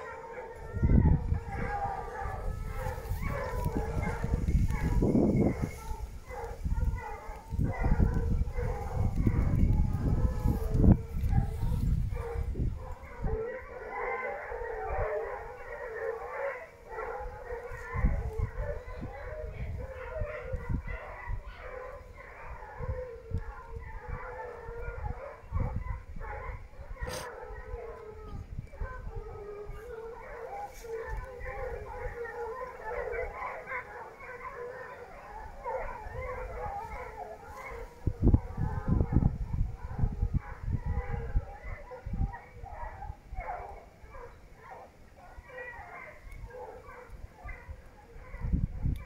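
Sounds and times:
hounds baying: 0.0s - 49.0s
wind and handling on microphone: 0.0s - 49.0s.

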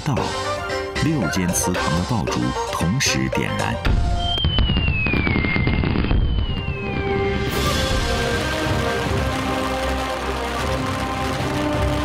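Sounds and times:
music: 0.0s - 5.4s, 6.0s - 12.0s
fireworks whistling: 3.9s - 12.0s
firecrackers crackling: 4.0s - 12.0s.

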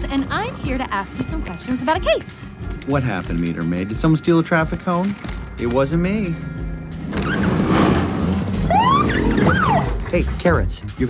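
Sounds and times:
electronic police siren whoop: 8.6s - 10.0s.

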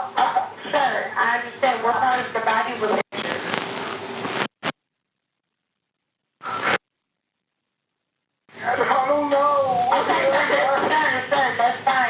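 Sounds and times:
steady hiss: 0.0s - 4.8s, 6.4s - 6.8s, 8.5s - 12.0s
voice on phone call: 8.6s - 12.0s.

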